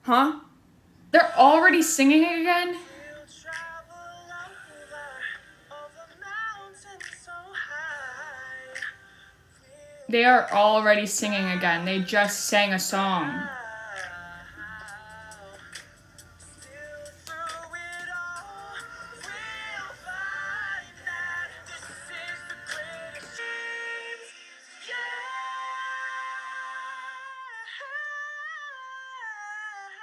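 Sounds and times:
singing over pop music: 0:01.2 - 0:30.0.

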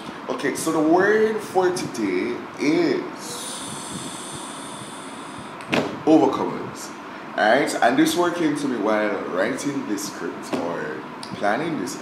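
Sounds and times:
steady high hiss: 0:00.0 - 0:11.0.

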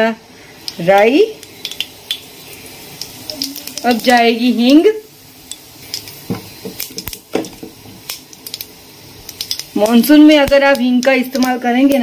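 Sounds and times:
oil sizzling: 0:00.0 - 0:12.0
seeds clicking in pot: 0:08.0 - 0:12.0.

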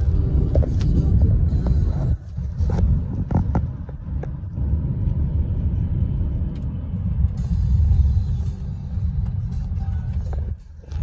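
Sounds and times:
car cabin road rumble: 0:00.0 - 0:11.0.

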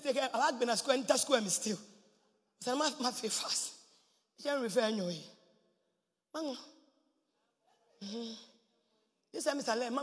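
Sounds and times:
woman preaching: 0:00.0 - 0:05.5, 0:06.4 - 0:06.9, 0:09.3 - 0:10.0.

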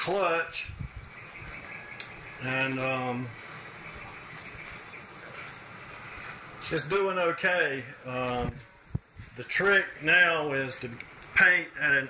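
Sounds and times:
low room background noise: 0:00.0 - 0:12.0.

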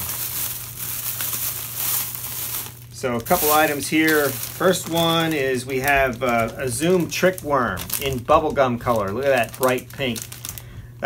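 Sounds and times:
plastic bag rustling: 0:00.0 - 0:11.0.

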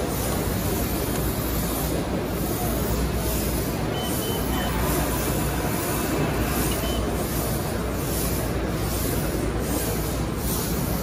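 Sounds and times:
exhibition hall rumble and hiss: 0:00.0 - 0:11.0
faint short high beeps: 0:03.9 - 0:04.8.

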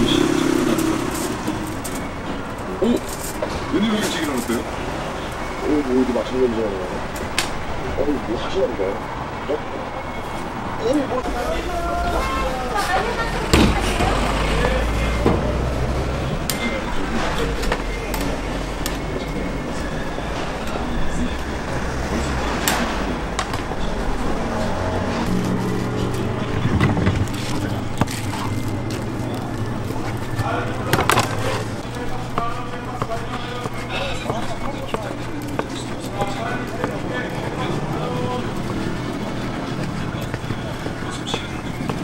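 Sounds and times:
indistinct voices: 0:00.0 - 0:42.0
vehicle noise: 0:00.0 - 0:42.0.

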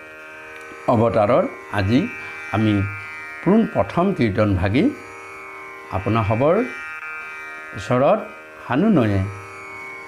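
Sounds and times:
droning background music: 0:00.1 - 0:10.0
man speaking: 0:05.9 - 0:06.8, 0:07.8 - 0:09.4.

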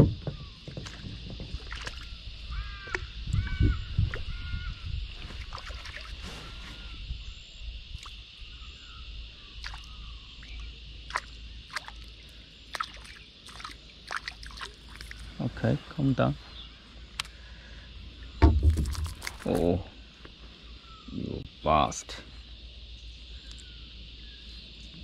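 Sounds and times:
water lapping around kayak hull: 0:00.0 - 0:03.3, 0:05.0 - 0:06.7, 0:09.4 - 0:15.4, 0:18.5 - 0:19.7
small splashes: 0:00.6 - 0:02.2, 0:05.1 - 0:06.3, 0:09.6 - 0:15.4, 0:18.5 - 0:19.8.

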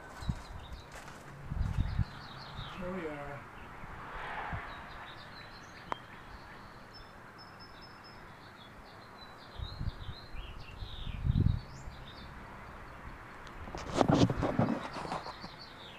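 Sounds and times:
wind buffeting microphone: 0:00.0 - 0:03.0, 0:09.5 - 0:12.1, 0:13.6 - 0:15.5
small birds chirping: 0:00.0 - 0:04.0, 0:04.6 - 0:15.9.

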